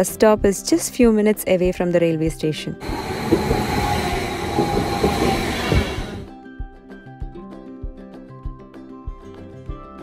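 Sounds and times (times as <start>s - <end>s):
high whine of train: 2.8s - 6.3s
train wheels rushing on rails: 2.8s - 6.3s.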